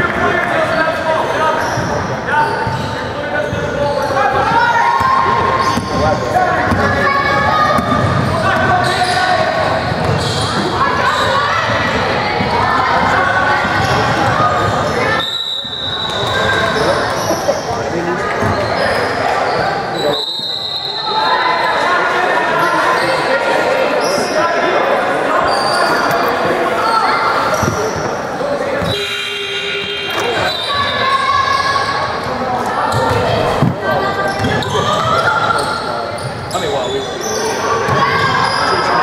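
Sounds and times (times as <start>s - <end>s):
murmur of voices: 0.0s - 39.0s
referee's whistle blasts: 15.0s - 16.8s, 20.0s - 21.3s, 28.8s - 31.2s.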